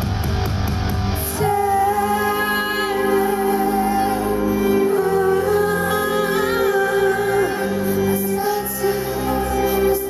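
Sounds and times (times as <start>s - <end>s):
woman singing into a microphone: 1.2s - 10.0s.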